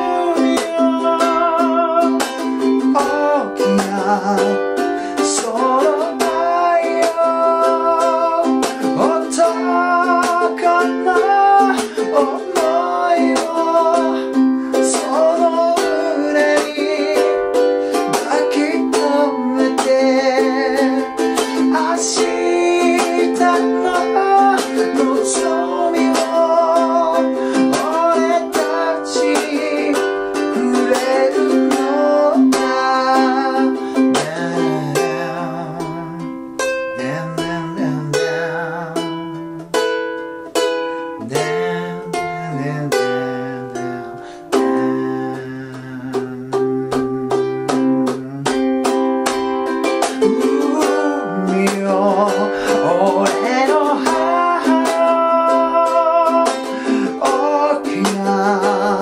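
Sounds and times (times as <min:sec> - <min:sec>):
man singing a ballad: 0:00.0 - 0:40.0, 0:40.9 - 0:59.0
ukulele strumming: 0:00.0 - 0:59.0.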